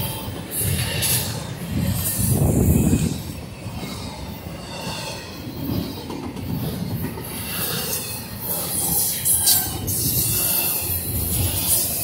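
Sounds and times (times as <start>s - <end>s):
sharp clacks of train wheels: 0.0s - 12.0s
train wheels rumbling on rails: 0.0s - 12.0s.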